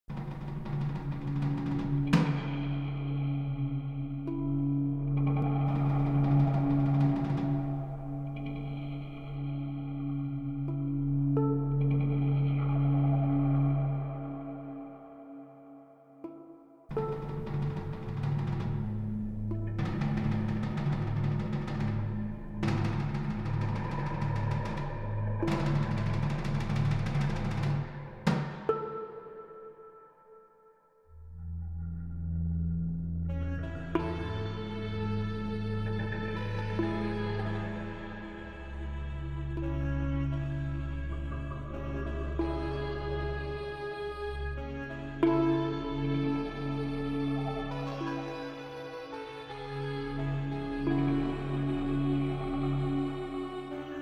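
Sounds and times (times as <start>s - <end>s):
synthesised low held notes: 0.1s - 29.6s, 31.1s - 54.0s
drum-like hits: 16.9s - 29.1s
pulsing low synth bass: 31.2s - 48.5s.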